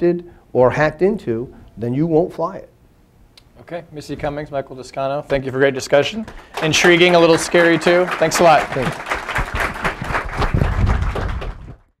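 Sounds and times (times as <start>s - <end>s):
audience applauding: 6.2s - 11.9s
low thumps: 9.4s - 11.9s.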